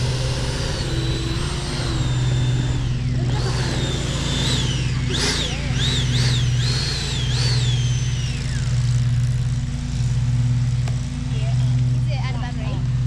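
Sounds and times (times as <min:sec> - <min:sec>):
high electric fan whine: 0:00.0 - 0:13.0
low engine drone: 0:00.0 - 0:13.0.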